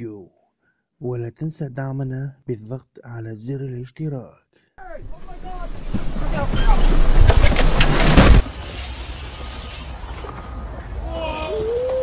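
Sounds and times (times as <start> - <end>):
water rushing: 5.0 - 10.1.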